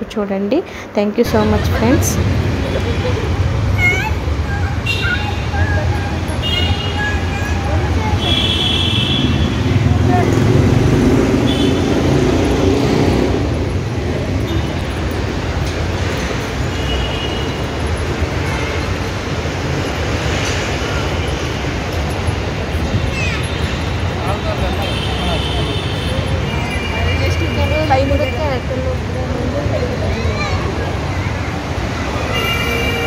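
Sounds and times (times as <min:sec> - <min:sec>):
people talking: 0:00.0 - 0:11.0, 0:22.5 - 0:33.0
road traffic rumble: 0:00.0 - 0:33.0.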